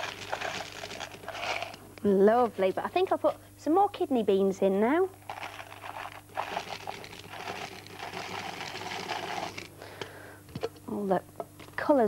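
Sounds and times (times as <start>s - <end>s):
dried beans pouring onto pasta: 0.0s - 1.8s, 5.2s - 9.7s.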